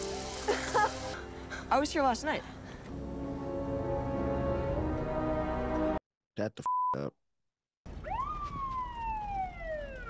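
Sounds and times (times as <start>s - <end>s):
police siren wail: 7.9s - 10.0s.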